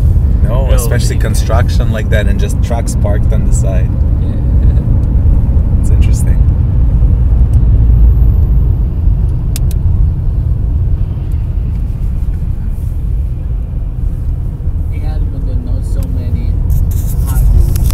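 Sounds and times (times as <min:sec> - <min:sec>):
road and engine rumble in car: 0:00.0 - 0:17.9.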